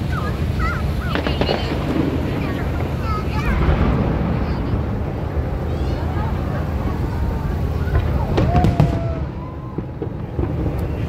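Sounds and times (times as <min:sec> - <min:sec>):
fireworks booming: 0:00.0 - 0:11.0
sharp fireworks bangs: 0:00.0 - 0:11.0.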